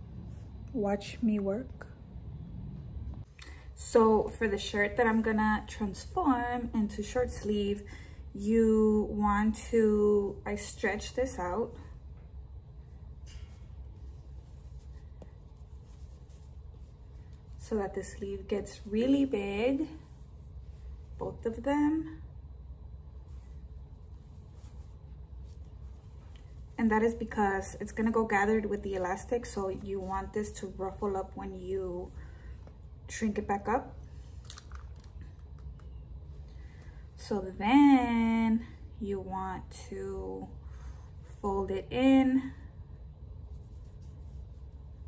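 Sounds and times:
low room hum: 0.0s - 45.0s
shirt sleeve rustling: 13.3s - 20.8s, 23.2s - 26.8s.

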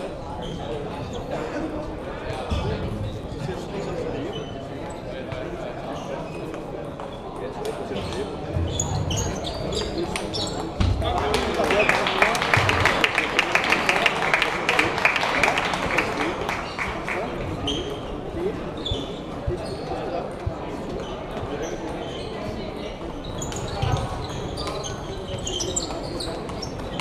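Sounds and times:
chatter in sports hall: 0.0s - 27.0s.

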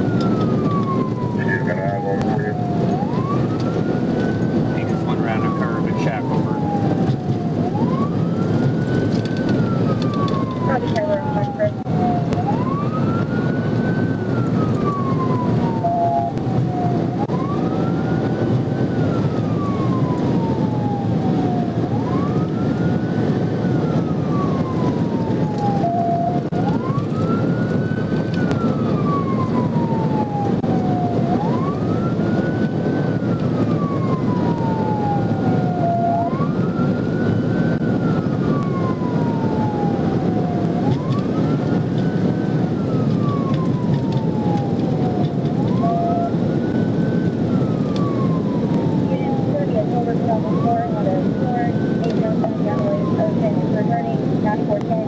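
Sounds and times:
police siren wailing: 0.0s - 55.0s
road and wind noise: 0.0s - 55.0s.

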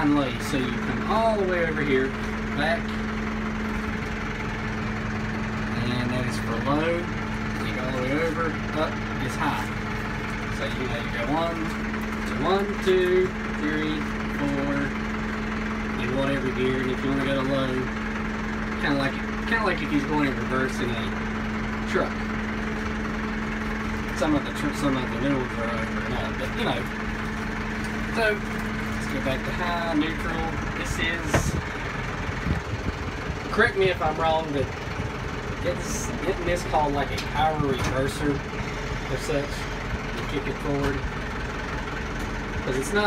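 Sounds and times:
tractor diesel engine idling: 0.0s - 43.0s.

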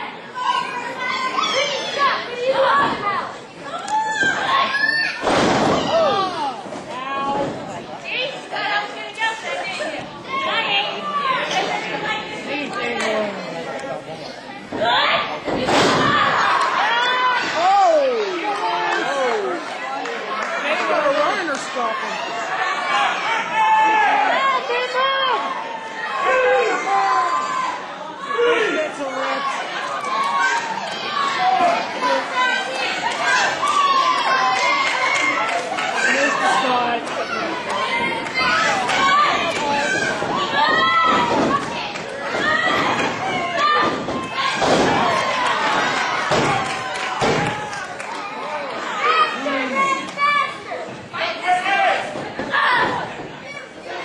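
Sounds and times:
wrestlers thudding on ring mat: 5.2s - 6.1s, 38.4s - 47.8s
crowd shouting: 14.8s - 54.0s.

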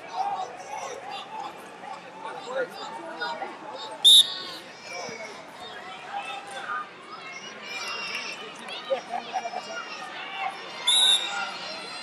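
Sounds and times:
spectators and coaches voices: 0.0s - 12.0s
referee's whistle blast: 4.1s - 4.4s, 10.9s - 11.4s.

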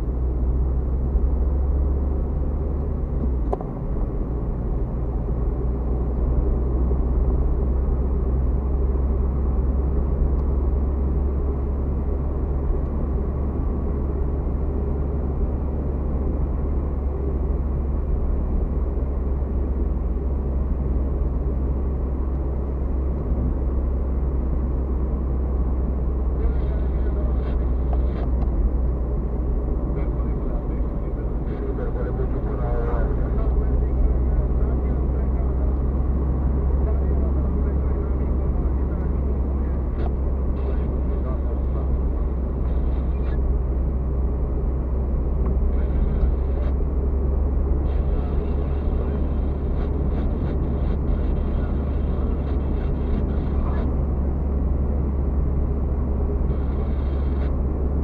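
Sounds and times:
car road and engine noise: 0.0s - 58.0s.

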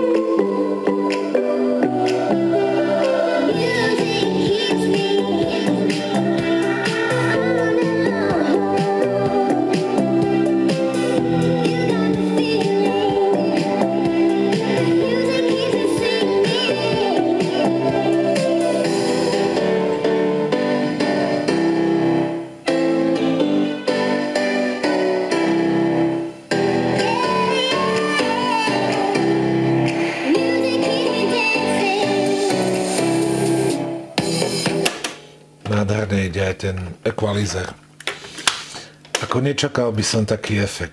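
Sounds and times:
music with singing from speakers: 0.0s - 35.6s.

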